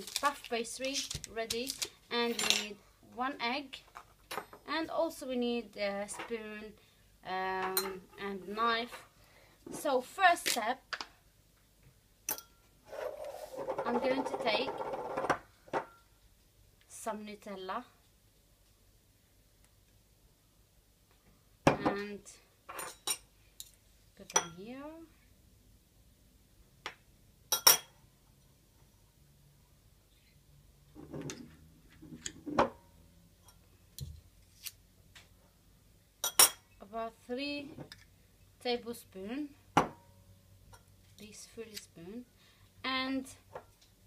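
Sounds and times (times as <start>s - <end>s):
metal spoon clinking on glass: 12.3s - 12.6s, 27.5s - 28.0s, 36.2s - 36.6s.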